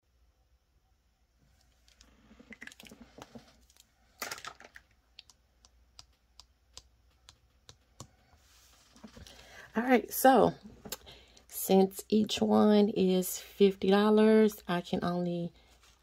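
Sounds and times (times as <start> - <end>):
soft rustling: 7.1 - 9.5.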